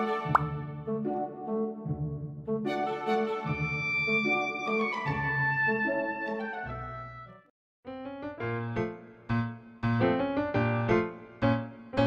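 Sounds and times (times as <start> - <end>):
gentle background music: 0.0 - 7.4
rising pop sound effect: 0.1 - 0.6.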